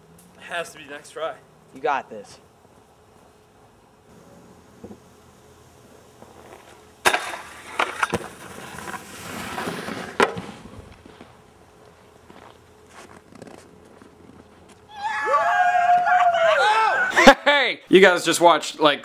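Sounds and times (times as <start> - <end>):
snowskate deck cracking down: 6.1 - 15.2
snowskate scraping: 6.2 - 14.9.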